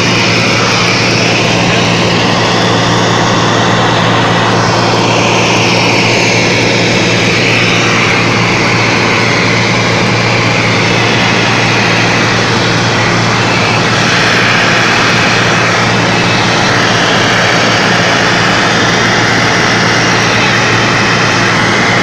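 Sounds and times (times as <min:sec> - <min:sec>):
propeller plane engine in cabin: 0:00.0 - 0:22.0.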